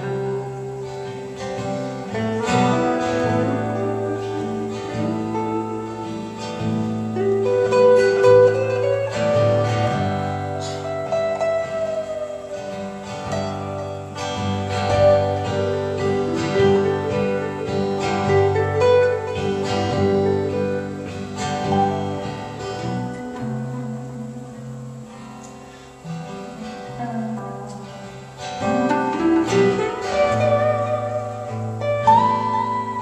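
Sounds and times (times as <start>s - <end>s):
acoustic guitar strumming: 0.0s - 33.0s
electric guitar lead melody: 0.0s - 33.0s.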